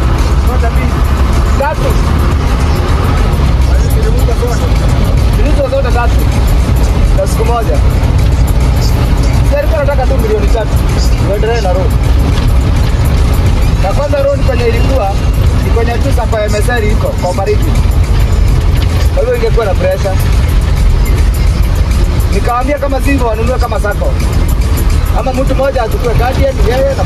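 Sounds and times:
vehicle engine and road noise: 0.0s - 27.0s.

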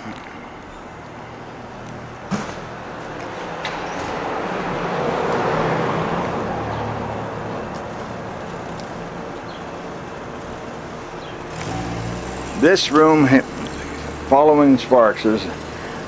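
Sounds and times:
car passing: 1.3s - 16.0s.

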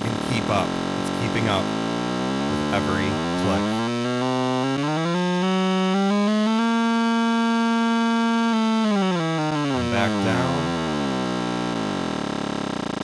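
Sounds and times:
fast clicks blurring into pitched tone: 0.0s - 13.0s.

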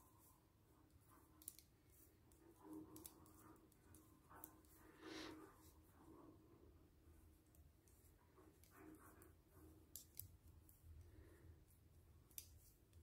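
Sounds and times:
soft rustle: 0.0s - 13.0s
metal knitting needles clicking: 1.4s - 1.7s, 12.3s - 12.7s.

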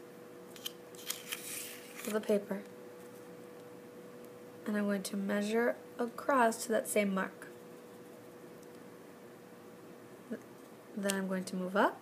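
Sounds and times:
faint steady hum: 0.0s - 12.0s
paper rustling: 1.0s - 2.3s.

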